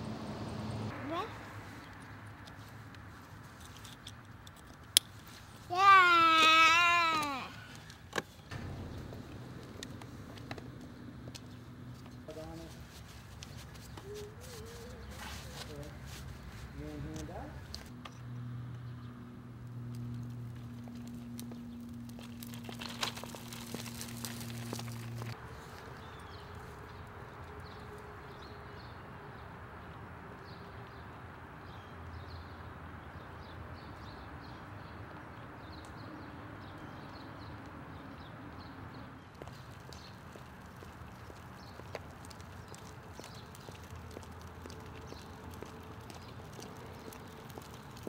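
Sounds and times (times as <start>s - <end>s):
stroller wheels clicking: 1.1s - 18.1s, 19.6s - 28.0s, 35.2s - 48.0s
footsteps: 5.2s - 18.2s
steady low hum: 8.5s - 12.3s.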